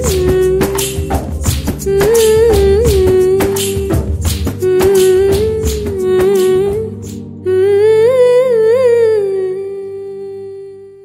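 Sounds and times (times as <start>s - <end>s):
soft low accompaniment: 0.0s - 11.0s.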